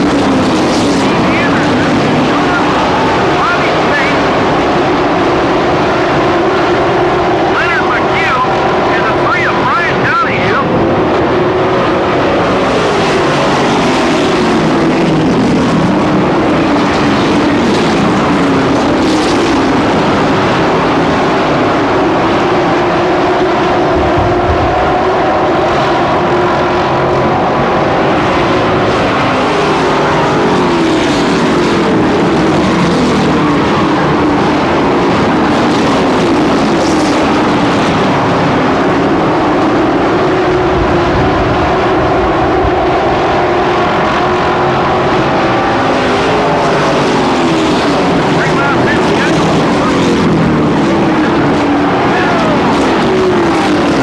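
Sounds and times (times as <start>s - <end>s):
race truck engines droning: 0.0s - 54.0s.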